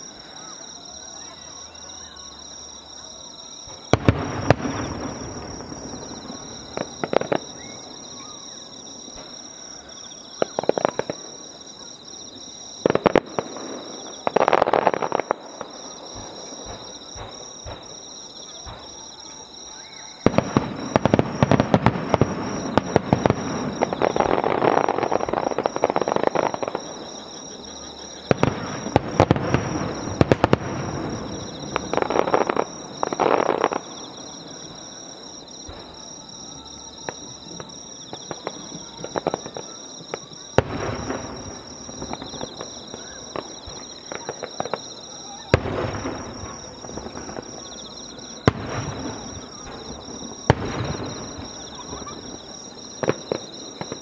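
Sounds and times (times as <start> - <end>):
fireworks booming and crackling: 0.0 - 54.0
insects chirping: 0.0 - 54.0.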